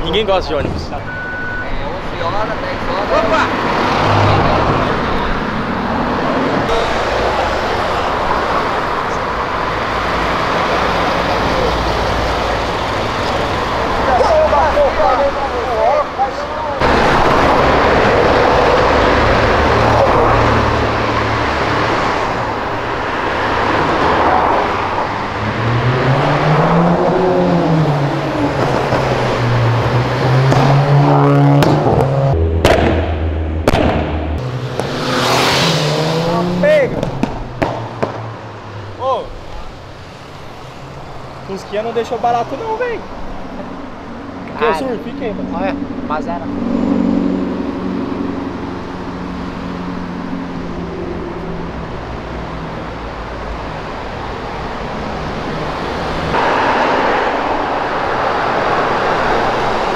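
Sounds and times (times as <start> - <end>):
steady traffic noise: 0.0 - 59.9
cars accelerating past: 1.0 - 59.9.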